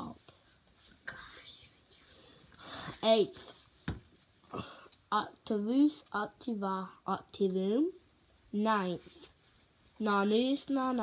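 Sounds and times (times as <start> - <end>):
soft whispering: 0.0 - 3.6.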